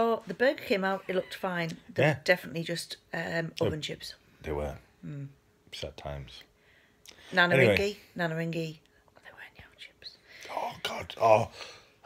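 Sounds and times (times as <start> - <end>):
person speaking: 1.0 - 2.2, 7.2 - 8.0
person whispering: 9.2 - 11.2.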